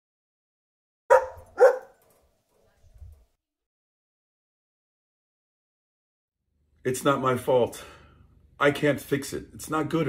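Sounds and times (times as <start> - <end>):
dog barking: 1.1 - 2.0.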